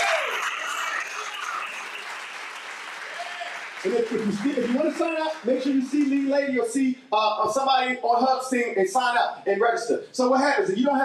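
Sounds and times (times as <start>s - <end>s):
congregation applauding: 0.0s - 6.8s.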